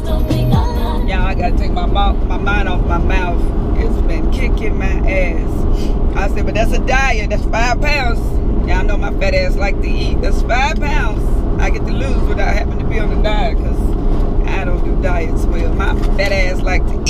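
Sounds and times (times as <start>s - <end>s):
car driving rumble from inside: 0.0s - 17.0s.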